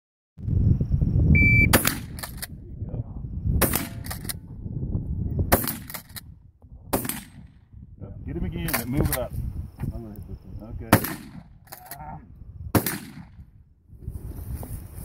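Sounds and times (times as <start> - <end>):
shot timer beep: 1.4 - 1.8
shotgun shots: 1.7 - 2.5, 3.6 - 4.4, 5.5 - 6.2, 6.9 - 7.6, 10.9 - 11.8, 12.7 - 13.4.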